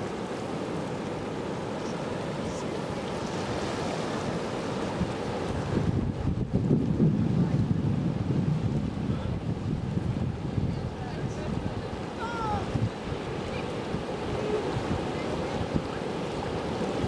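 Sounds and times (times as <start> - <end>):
river water flowing: 0.0 - 6.6, 7.6 - 17.0
surf: 0.0 - 17.0
wind buffeting microphone: 3.3 - 17.0.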